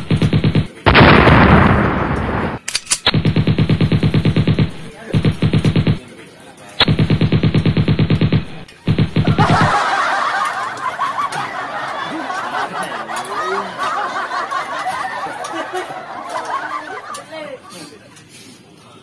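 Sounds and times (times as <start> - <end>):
rapid machine-gun fire: 0.0 - 6.0, 6.8 - 9.9
loud blast: 0.9 - 6.0
laughter: 9.2 - 18.2.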